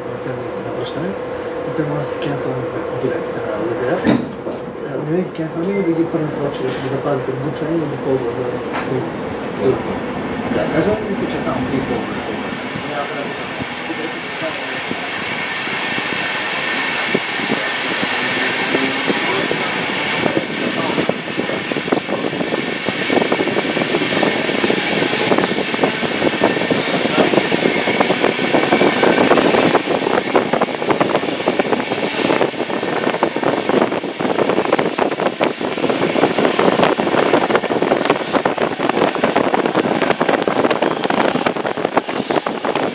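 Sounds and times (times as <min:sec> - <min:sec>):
train rumble and rattle: 0:00.0 - 0:42.9
train wheels on rails: 0:03.4 - 0:42.9.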